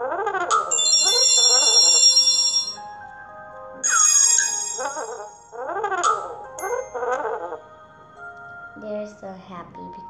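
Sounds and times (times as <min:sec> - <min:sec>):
twinkling chime effects: 0:00.5 - 0:02.9, 0:03.8 - 0:07.1.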